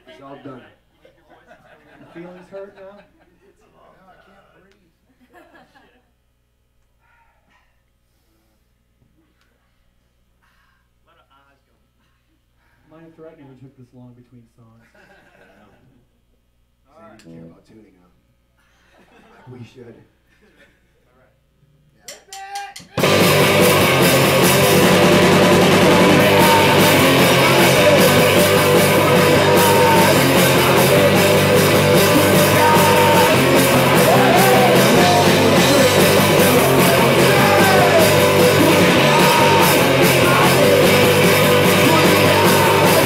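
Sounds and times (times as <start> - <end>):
live rock band playing: 23.0 - 43.0
man singing into microphone: 25.7 - 43.0.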